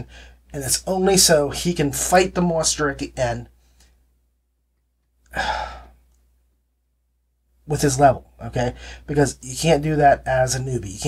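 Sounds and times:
man speaking: 0.0 - 3.5, 7.6 - 11.0.

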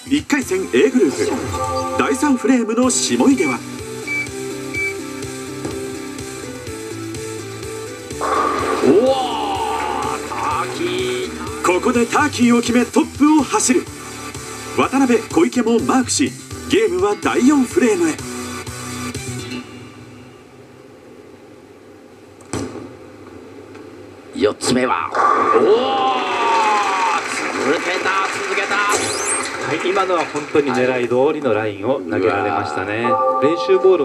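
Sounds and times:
background music through tv speaker: 0.0 - 19.7
bowling alley background: 1.0 - 12.2, 32.9 - 34.0
musical sting: 1.2 - 3.4, 33.0 - 34.0
bowling ball crashing into pins: 8.2 - 10.2.

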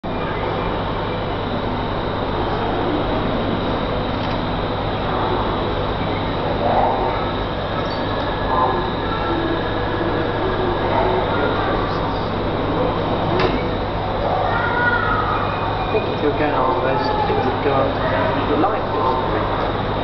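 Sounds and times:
constant low hum: 0.0 - 20.0
faint voices of visitors: 0.1 - 20.0.

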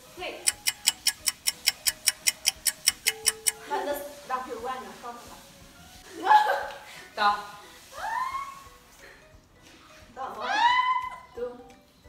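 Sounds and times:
rapid even ticking: 0.5 - 3.6.

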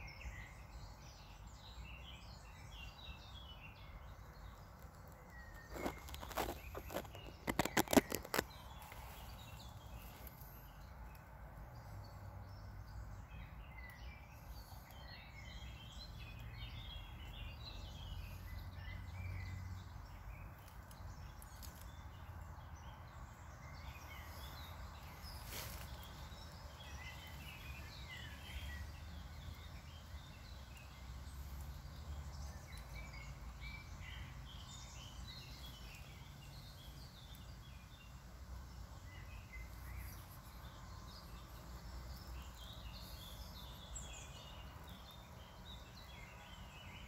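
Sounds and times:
birds chirping faintly: 0.0 - 47.0.

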